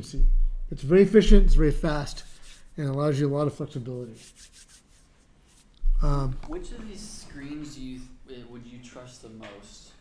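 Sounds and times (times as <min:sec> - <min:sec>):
rubbing and rustling: 0:01.7 - 0:08.1.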